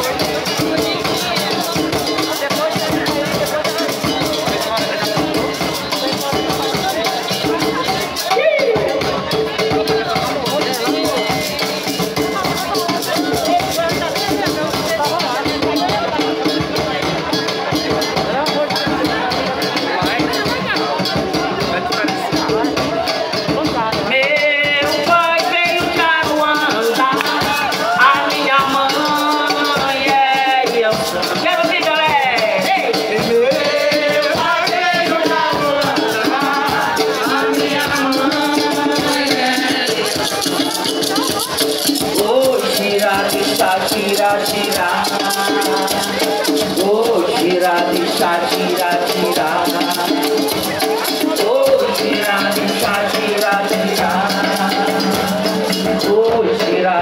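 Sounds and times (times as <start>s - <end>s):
live band music: 0.0s - 57.0s
rattling percussion rhythm: 0.0s - 57.0s
voices: 0.0s - 57.0s.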